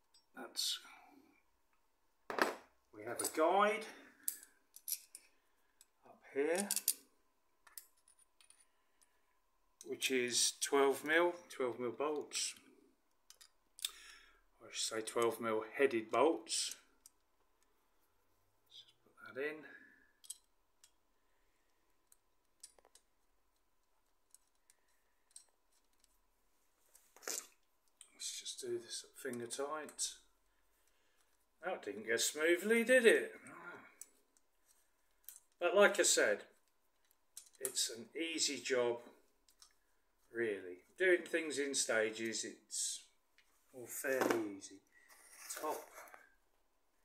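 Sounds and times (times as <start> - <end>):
metallic clicks and clinks: 4.2 - 9.1, 13.2 - 14.0, 20.2 - 21.0, 22.0 - 26.1.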